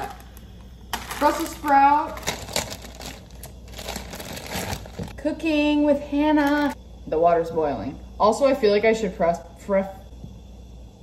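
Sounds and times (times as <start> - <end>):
plastic bag crinkling: 0.0 - 5.2, 6.4 - 6.8.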